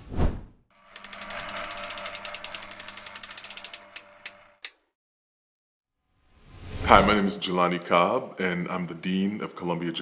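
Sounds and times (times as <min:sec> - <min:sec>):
rapid ratchet-like clicks: 0:00.8 - 0:04.8.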